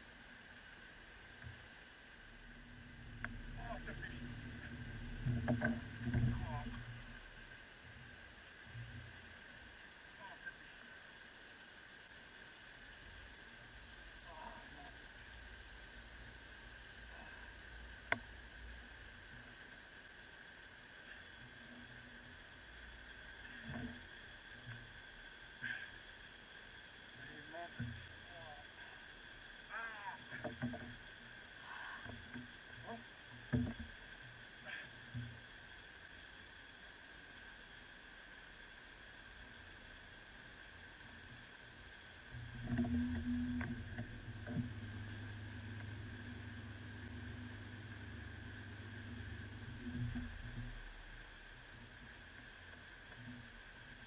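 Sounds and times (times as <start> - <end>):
steady high hum: 0.0 - 54.0.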